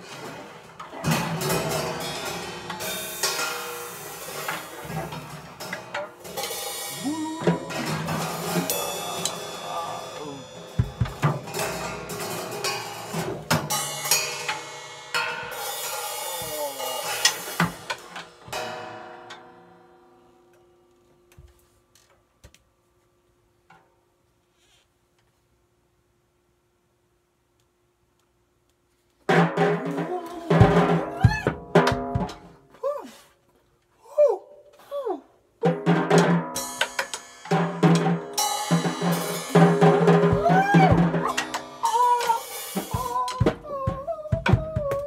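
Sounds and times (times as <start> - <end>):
drum kit played with sticks: 0.0 - 18.9, 29.2 - 32.6, 35.6 - 45.0
soft drum taps: 43.0 - 45.0.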